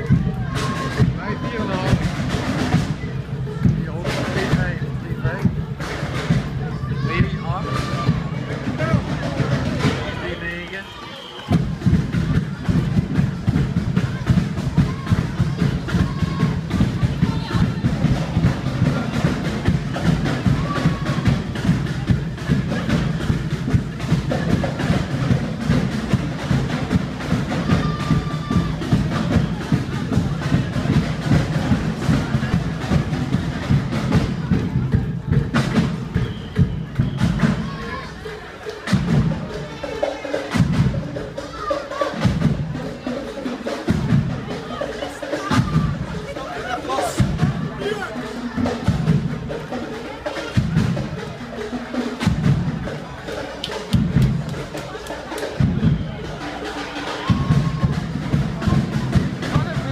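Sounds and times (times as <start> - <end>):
drum-driven music: 0.0 - 59.9
voices: 0.0 - 59.9.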